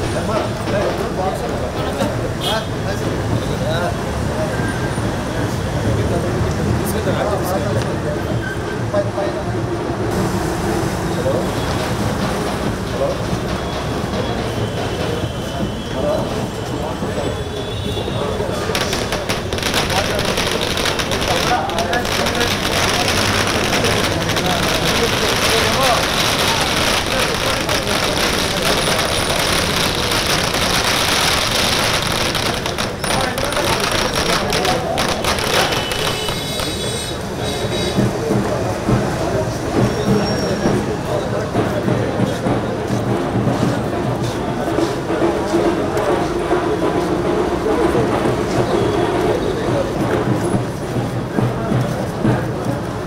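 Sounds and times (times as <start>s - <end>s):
crowd chatter: 0.0s - 53.0s
firecrackers crackling: 18.2s - 38.1s.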